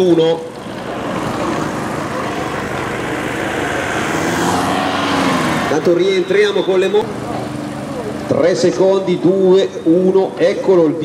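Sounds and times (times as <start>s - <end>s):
car driving past: 0.4s - 8.1s.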